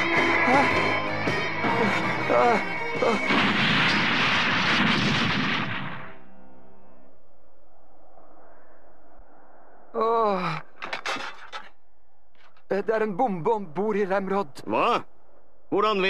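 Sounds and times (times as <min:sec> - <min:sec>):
man groaning: 0:00.4 - 0:01.0, 0:01.7 - 0:03.3
cartoon spacecraft explosion: 0:03.2 - 0:06.2.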